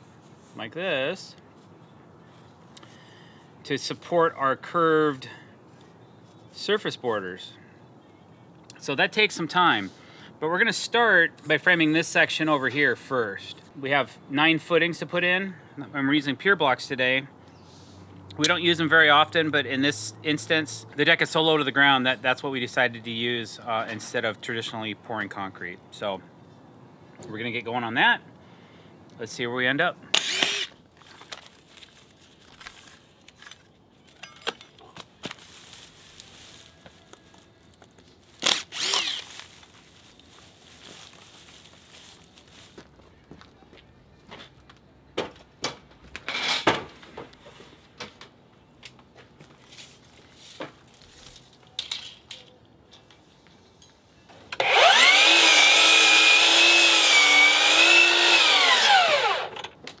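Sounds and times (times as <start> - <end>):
miter saw cutting wood: 30.2 - 30.7, 38.4 - 39.3, 54.6 - 59.6.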